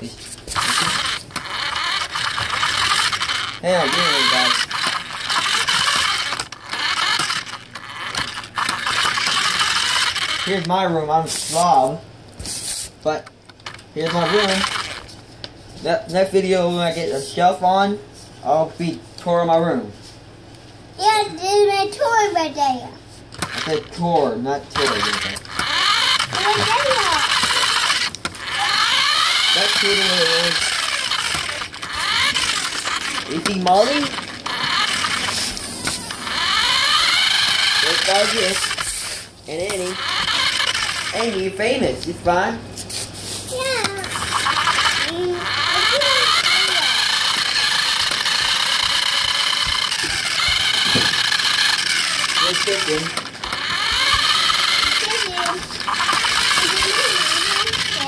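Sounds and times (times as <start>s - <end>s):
toy car motor whining: 0.0s - 12.0s, 13.6s - 15.1s, 23.3s - 42.1s, 42.9s - 58.0s.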